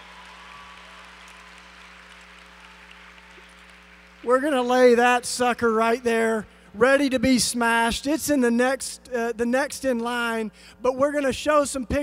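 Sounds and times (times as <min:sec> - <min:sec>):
audience applause: 0:00.0 - 0:04.6
low electrical hum: 0:00.0 - 0:12.0.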